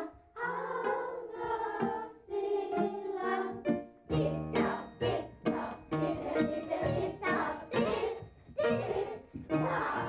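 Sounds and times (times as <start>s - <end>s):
young children singing in unison: 0.0s - 10.0s.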